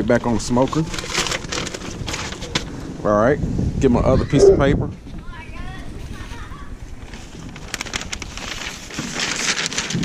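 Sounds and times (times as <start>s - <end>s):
paper crinkling and rustling: 0.2s - 2.7s, 7.0s - 10.0s.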